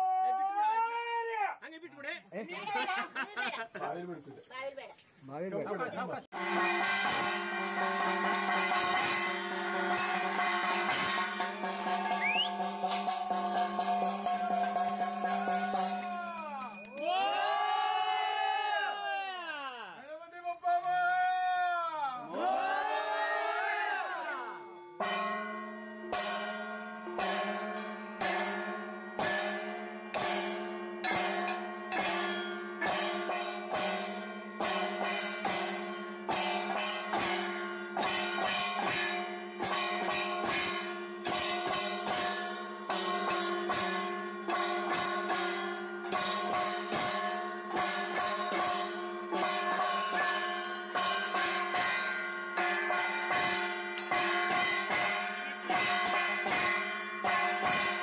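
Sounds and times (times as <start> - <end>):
hand bell ringing: 6.9 - 19.6, 20.6 - 22.3, 24.7 - 58.0.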